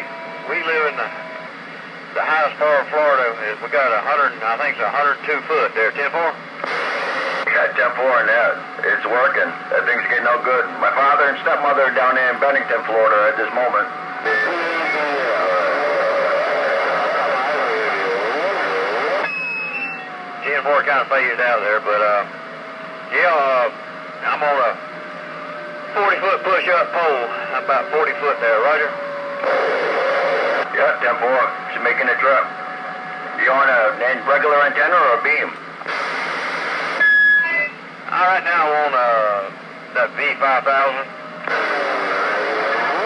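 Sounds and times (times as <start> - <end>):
radio static hiss: 0.0 - 22.3, 23.1 - 43.0
warbling radio voice: 7.4 - 22.3, 23.1 - 24.8, 25.9 - 32.6, 33.2 - 35.6, 37.4 - 43.0
steady high beep: 19.2 - 20.1.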